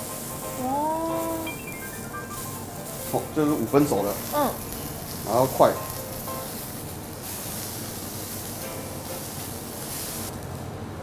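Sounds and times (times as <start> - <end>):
soft background music: 0.0 - 6.8
steak sizzling on a griddle: 0.0 - 10.7.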